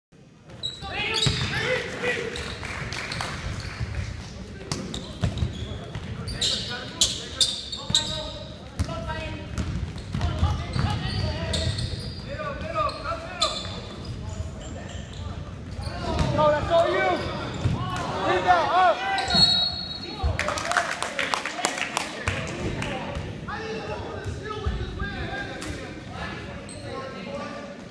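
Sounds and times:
sneakers squeaking: 0.5 - 18.0, 19.1 - 20.3, 25.6 - 27.6.

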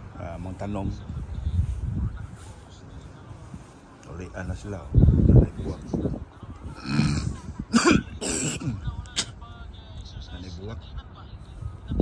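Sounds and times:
person clearing throat: 6.8 - 8.8.

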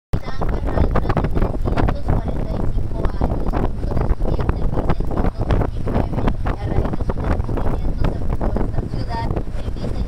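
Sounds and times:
wind buffeting microphone: 0.2 - 10.0.

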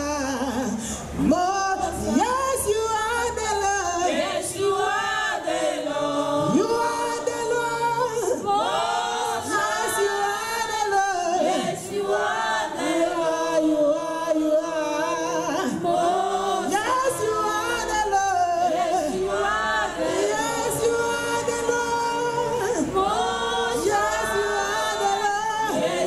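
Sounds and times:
choir singing harmony: 0.0 - 26.0
women singing lead: 0.0 - 26.0.

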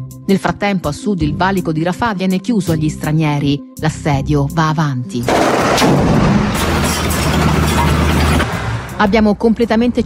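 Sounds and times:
heavy engine rumbling: 5.3 - 9.4.

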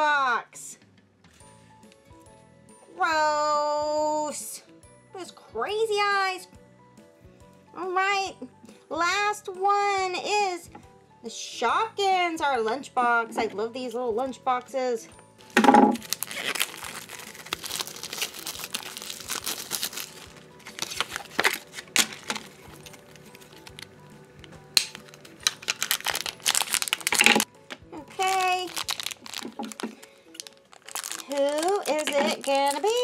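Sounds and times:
soft background music: 0.0 - 33.0
cardboard and foil crinkling: 15.4 - 33.0.

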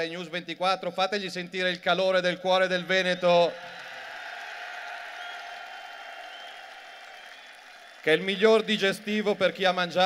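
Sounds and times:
crowd applause: 3.6 - 9.8.

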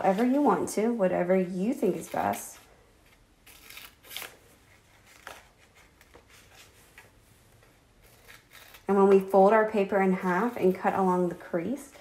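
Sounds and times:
scissors cutting paper: 1.8 - 6.7, 8.0 - 11.1.

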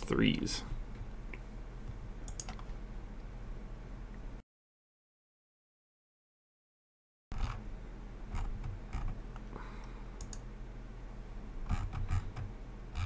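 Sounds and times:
low electrical hum: 0.0 - 4.4, 7.3 - 13.0
computer clicks: 2.3 - 2.7, 10.2 - 10.4.

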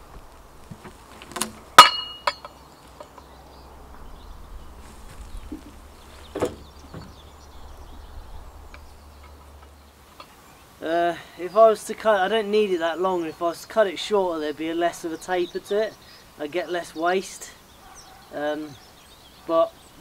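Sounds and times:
log rolling over knock: 0.0 - 2.4, 4.8 - 7.3.

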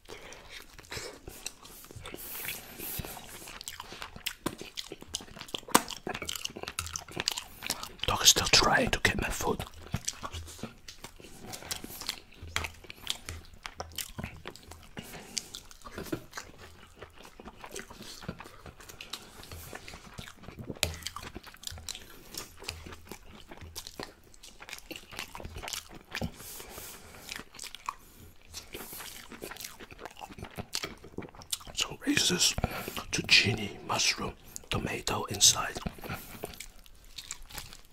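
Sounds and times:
open-mouth chewing and lip smacking: 0.0 - 37.9.

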